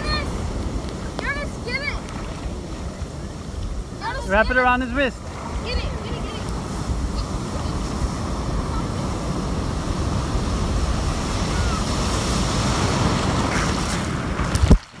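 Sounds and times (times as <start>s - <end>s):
ocean surf breaking: 0.0s - 15.0s
wind buffeting microphone: 0.0s - 15.0s.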